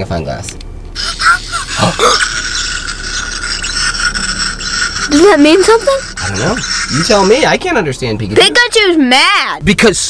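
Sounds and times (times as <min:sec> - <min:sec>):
high-pitched electronic toy voice: 0:04.7 - 0:07.1.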